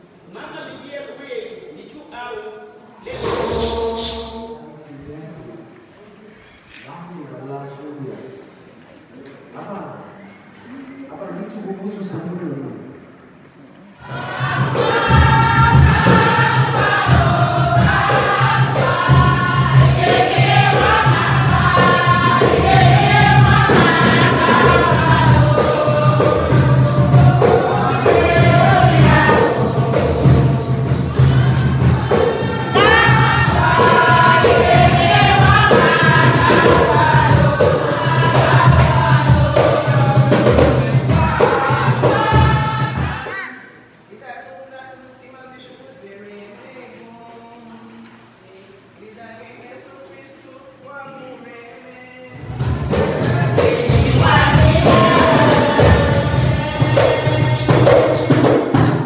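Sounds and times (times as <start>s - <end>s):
group singing together: 2.8s - 6.1s, 13.8s - 43.9s, 46.7s - 48.5s, 51.4s - 59.0s
hand drums beating: 3.1s - 4.4s, 14.1s - 43.3s, 52.4s - 59.0s.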